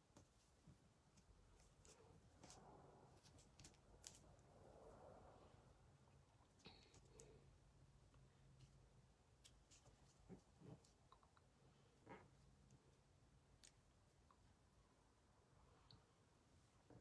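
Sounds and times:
soft rubbing of clay: 0:00.0 - 0:05.8, 0:08.4 - 0:13.1.

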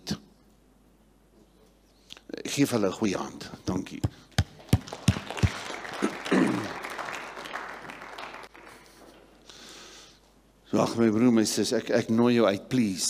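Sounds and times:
congregation applauding: 0:04.4 - 0:09.7.

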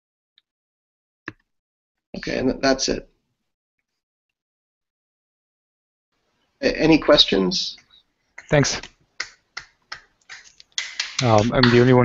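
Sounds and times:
person clapping: 0:08.4 - 0:12.0.

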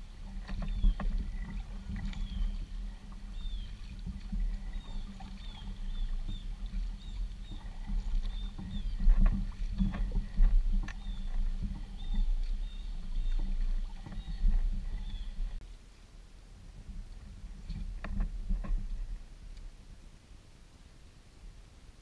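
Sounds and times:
paddle blades splashing: 0:00.0 - 0:15.6, 0:16.4 - 0:20.3
wind buffeting camera: 0:00.0 - 0:15.6, 0:16.6 - 0:20.0.

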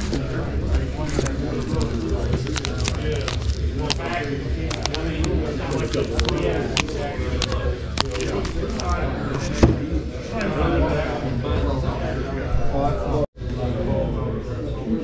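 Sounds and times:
people talking indistinctly: 0:00.0 - 0:15.0.

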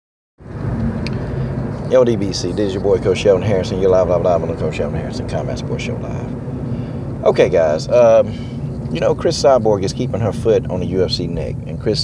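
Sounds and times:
car road and engine noise: 0:00.4 - 0:12.0.

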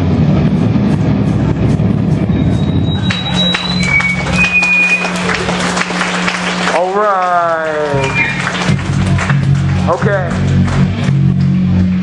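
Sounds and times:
hardcore band music: 0:00.0 - 0:12.0
held low amp note: 0:00.0 - 0:12.0
high whistling feedback tones: 0:02.2 - 0:05.4, 0:07.8 - 0:08.8.

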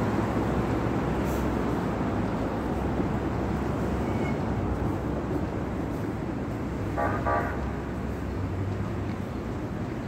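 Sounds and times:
city traffic rumble: 0:00.0 - 0:10.0
car horn toots: 0:07.0 - 0:07.6.

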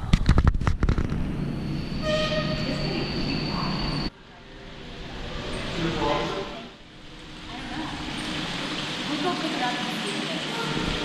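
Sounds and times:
indoor background hum: 0:00.0 - 0:11.0
thin high whine: 0:00.9 - 0:09.4.

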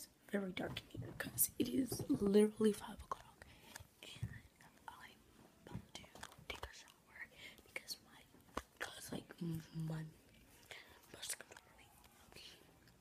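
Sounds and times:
faint whispering: 0:01.0 - 0:13.0.

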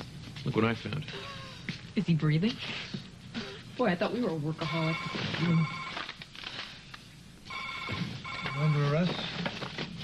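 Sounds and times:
electronic telephone ringing: 0:04.6 - 0:06.1, 0:07.5 - 0:09.1.

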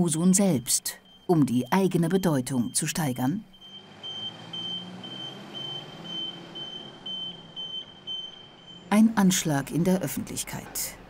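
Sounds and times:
truck engine rumbling: 0:00.0 - 0:11.0.

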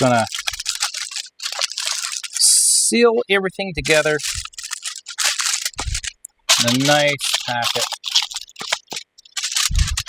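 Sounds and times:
aluminium foil crinkling: 0:00.0 - 0:10.0.

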